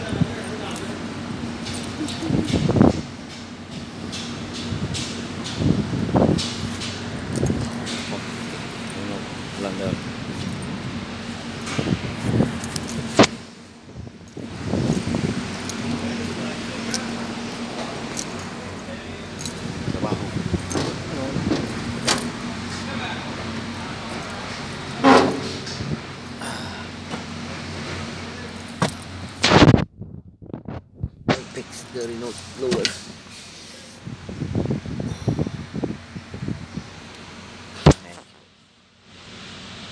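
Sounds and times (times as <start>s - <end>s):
steady low hum: 0.0s - 39.9s
keys jingling: 0.3s - 4.7s, 6.4s - 9.1s, 9.8s - 10.9s, 11.5s - 13.4s, 14.2s - 22.9s, 23.6s - 26.4s, 31.4s - 33.0s.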